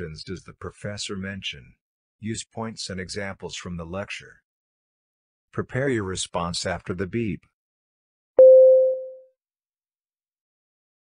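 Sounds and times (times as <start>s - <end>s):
electronic beep: 8.4s - 9.2s.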